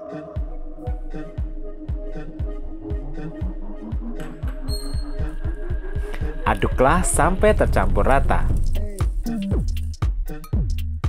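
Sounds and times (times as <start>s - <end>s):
electronic music with steady beat: 0.0s - 11.0s.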